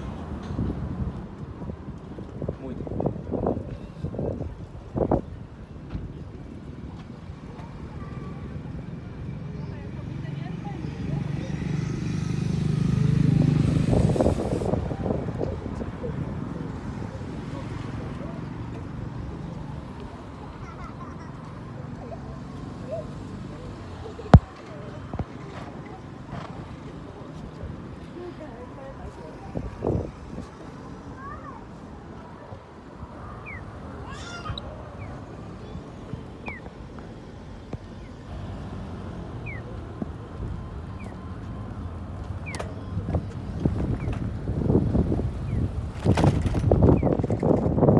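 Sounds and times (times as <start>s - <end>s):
road traffic passing: 0.0s - 47.9s
car passing by: 9.9s - 18.8s.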